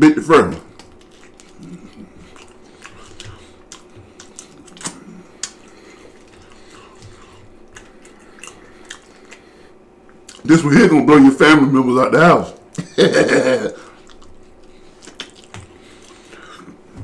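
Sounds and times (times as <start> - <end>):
man chewing food: 0.3 - 10.6, 12.4 - 17.0
wet mouth clicks and smacks: 0.7 - 9.5, 10.1 - 10.5, 14.0 - 16.5.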